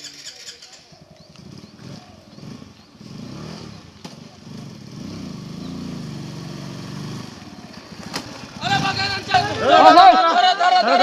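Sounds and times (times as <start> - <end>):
small motorcycle engine: 0.0 - 11.0.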